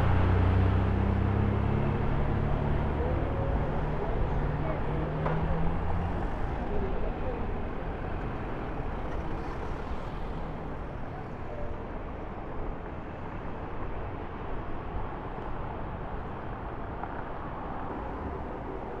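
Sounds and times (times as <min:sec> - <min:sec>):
steady street traffic: 0:00.0 - 0:19.0.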